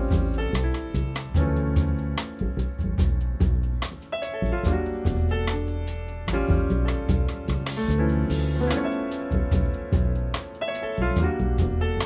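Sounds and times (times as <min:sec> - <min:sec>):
piano chords: 0:00.0 - 0:12.0
upright bass notes: 0:00.0 - 0:12.0.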